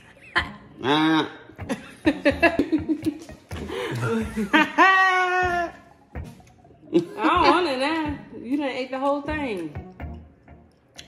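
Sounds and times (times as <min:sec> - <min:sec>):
people chuckling and laughing: 0:00.0 - 0:05.7.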